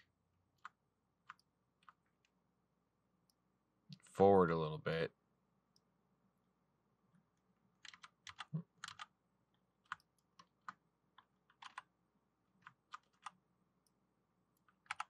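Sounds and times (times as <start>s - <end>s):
keyboard and mouse clicks: 0.6s - 2.3s, 7.8s - 9.1s, 9.8s - 11.9s, 12.6s - 13.4s, 14.6s - 15.0s.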